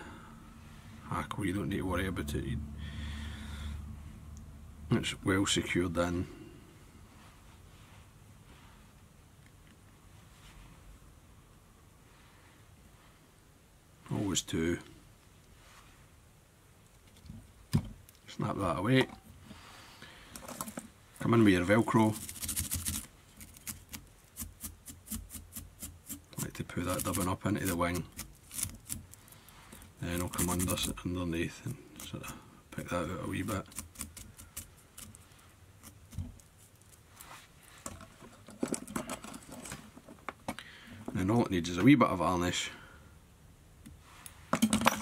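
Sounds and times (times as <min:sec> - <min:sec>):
tools scratching and clicking: 0:22.1 - 0:29.2, 0:30.0 - 0:31.0.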